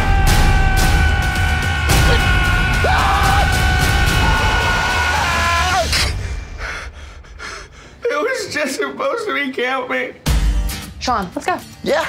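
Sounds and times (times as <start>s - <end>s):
loud music hit: 0.0s - 5.1s
man gasping and breathing hard: 6.2s - 8.0s.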